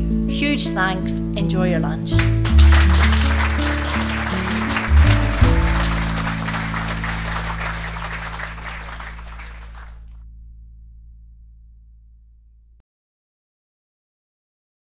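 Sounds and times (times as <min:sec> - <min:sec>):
background music with low notes: 0:00.0 - 0:09.9
audience applause: 0:02.2 - 0:10.0.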